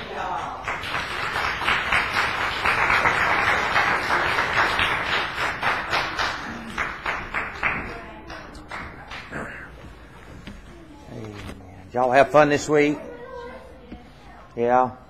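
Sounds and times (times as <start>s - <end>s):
audience applauding: 0.0s - 9.7s.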